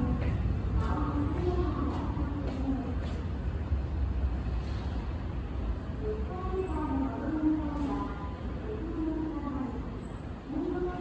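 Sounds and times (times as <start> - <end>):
station background rumble: 0.0 - 11.0.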